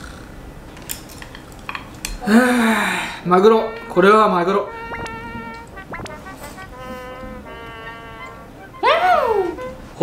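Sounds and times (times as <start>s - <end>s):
background music: 3.2s - 10.0s.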